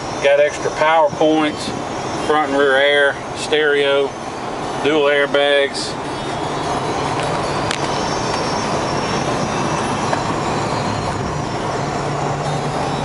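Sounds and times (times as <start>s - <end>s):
low engine hum: 0.0s - 13.0s
tyre and road rumble: 0.0s - 13.0s.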